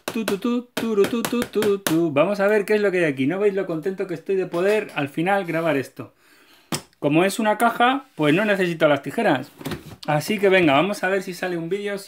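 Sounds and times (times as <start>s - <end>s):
man's wordless vocalizing: 0.0s - 6.2s.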